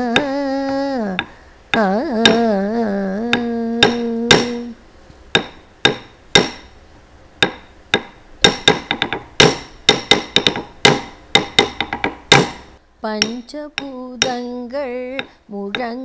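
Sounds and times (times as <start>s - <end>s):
wooden stick beating wooden block: 1.2s - 2.6s, 3.3s - 6.8s, 7.4s - 16.0s.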